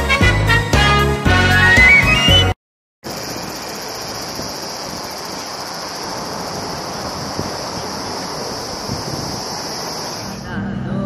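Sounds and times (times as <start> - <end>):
cicada chorus: 3.0 - 10.6.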